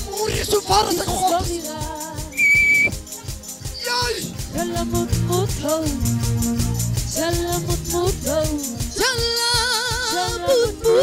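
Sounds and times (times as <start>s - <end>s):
group singing: 0.0s - 2.4s, 4.5s - 11.0s
whistle blast: 2.3s - 3.0s.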